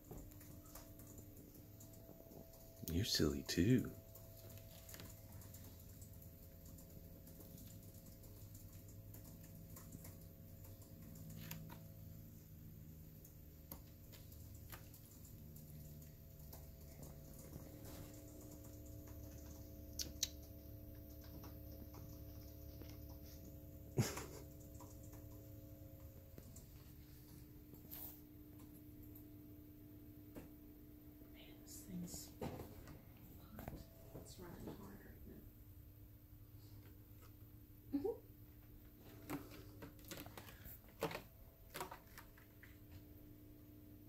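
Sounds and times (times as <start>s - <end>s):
faint steady hum: 0.0s - 44.0s.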